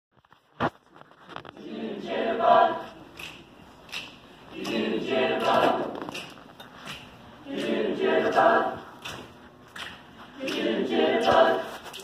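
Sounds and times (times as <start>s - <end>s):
choir singing unaccompanied: 1.5s - 3.3s, 4.5s - 6.3s, 7.4s - 9.0s, 10.4s - 12.0s.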